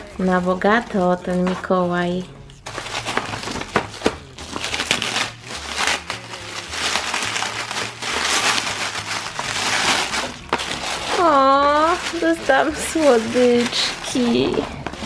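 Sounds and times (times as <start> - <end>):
metallic wrapping paper crackling: 0.0 - 15.0.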